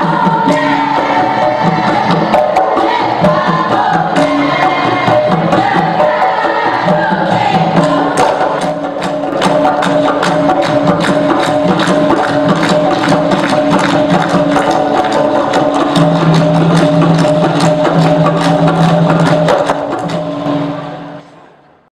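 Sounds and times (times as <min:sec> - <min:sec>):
women's chorus singing: 0:00.0 - 0:09.0
percussion: 0:00.0 - 0:21.8
fast hand clapping: 0:08.2 - 0:20.2.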